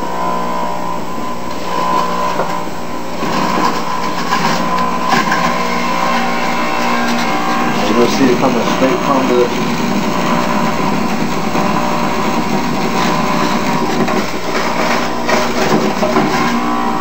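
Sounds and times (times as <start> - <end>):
juicer motor whining: 0.0 - 17.0
crackling grind of shredding: 1.5 - 17.0.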